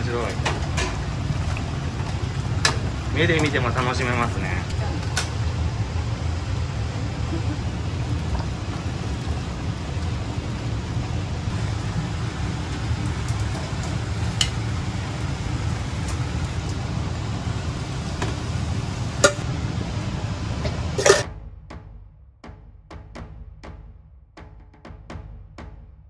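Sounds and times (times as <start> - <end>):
kitchen equipment rumbling: 0.0 - 21.3
kitchenware clinking: 19.2 - 19.5, 20.6 - 21.2.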